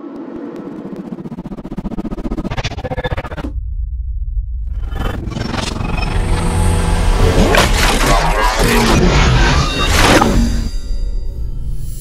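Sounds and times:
rapid stutter of clicks: 0.0 - 3.5
glitchy riser: 0.0 - 3.6, 4.5 - 10.8
deep rumble: 0.3 - 7.9.

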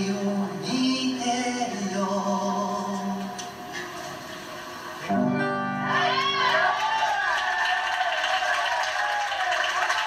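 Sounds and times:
person singing: 0.0 - 3.6.

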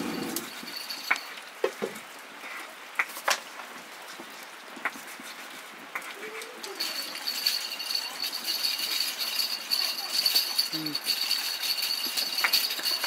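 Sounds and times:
wood fire crackling: 0.0 - 13.0.

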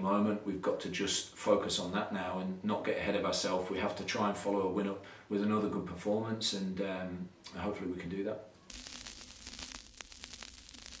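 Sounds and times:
record crackling clicks: 8.7 - 11.0
static hiss: 8.7 - 11.0.

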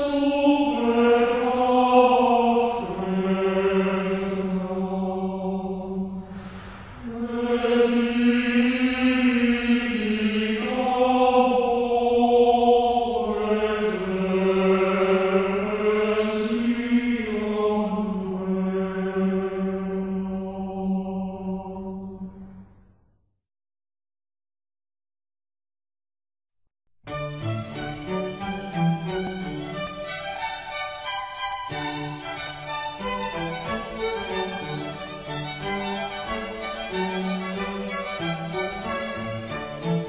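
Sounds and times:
slow sung chant: 0.0 - 22.9.

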